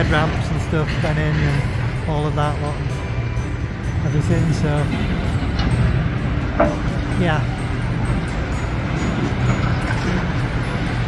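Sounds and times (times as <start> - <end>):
heavy machinery engine rumble: 0.0 - 11.0
traffic: 0.0 - 11.0.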